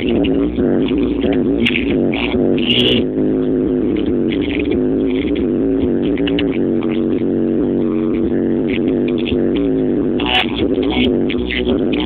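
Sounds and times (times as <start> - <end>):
electronic music through car stereo: 0.0 - 12.0.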